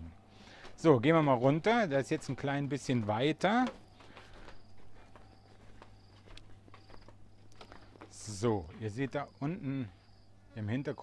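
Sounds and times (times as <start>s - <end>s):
footsteps on wooden decking: 0.1s - 10.5s.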